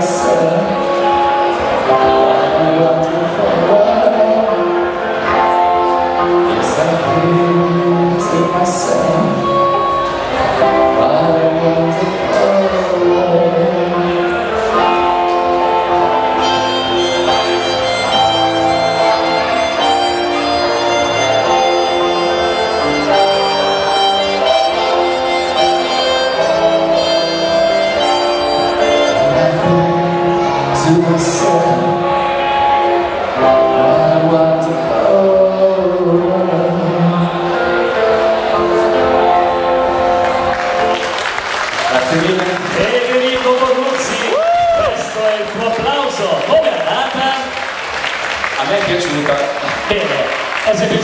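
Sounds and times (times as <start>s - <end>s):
electric guitar ballad: 0.0s - 42.8s
harmonica solo: 14.6s - 33.6s.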